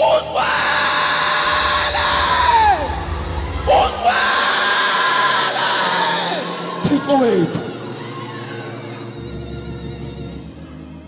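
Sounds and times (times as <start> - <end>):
man shouting into microphone: 0.0 - 7.8
music: 0.0 - 11.0.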